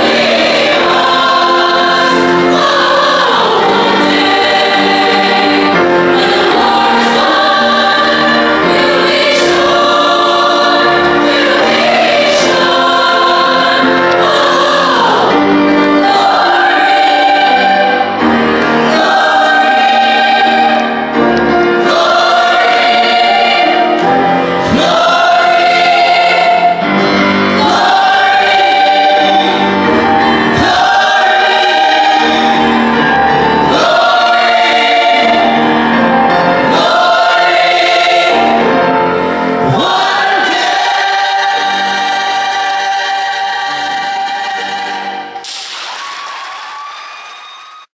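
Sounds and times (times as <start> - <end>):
choir singing held chords: 0.0 - 45.5.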